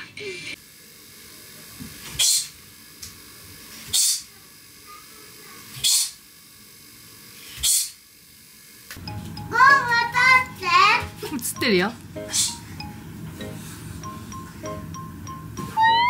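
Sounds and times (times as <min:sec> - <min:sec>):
girl's sharp hissing exhales: 0:12.3 - 0:12.6.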